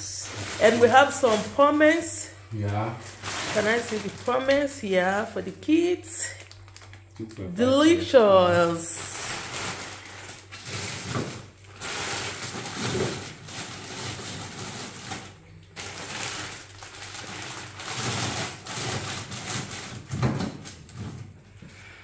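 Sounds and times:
plastic packaging rustling: 0.0s - 21.5s.

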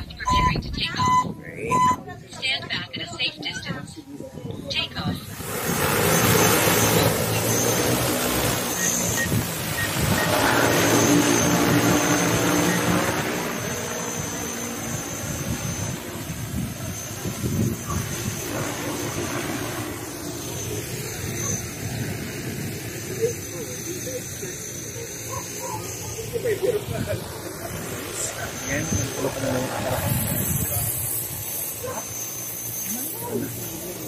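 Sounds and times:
drone rotors roaring: 4.8s - 34.0s.

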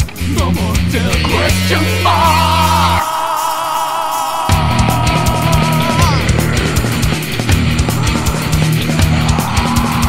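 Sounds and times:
death metal music: 0.0s - 10.0s.

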